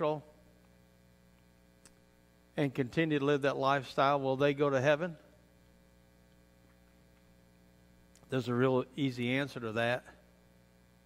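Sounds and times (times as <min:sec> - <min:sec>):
electrical mains hum: 0:00.0 - 0:11.0
man's voice: 0:02.6 - 0:05.2, 0:08.3 - 0:10.2.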